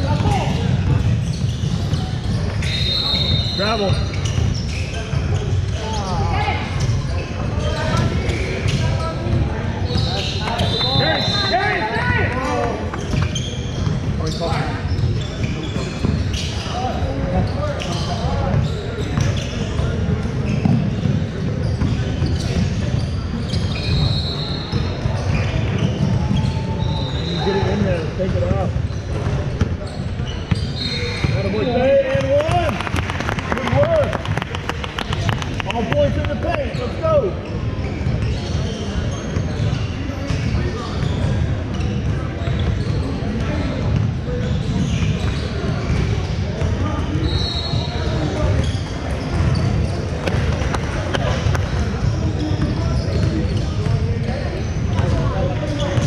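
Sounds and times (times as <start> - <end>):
sneaker squeaks: 0.0 - 32.7, 34.9 - 56.0.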